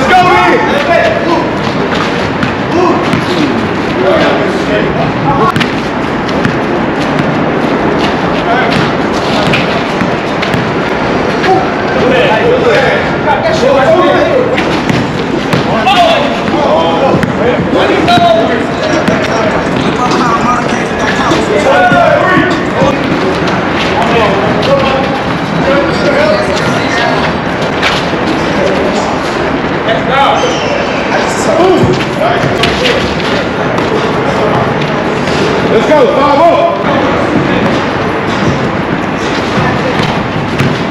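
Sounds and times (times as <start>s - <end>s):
players calling and talking: 0.0s - 40.9s
basketball bouncing on court: 1.1s - 3.6s, 5.4s - 11.5s, 14.5s - 20.2s, 37.1s - 40.9s.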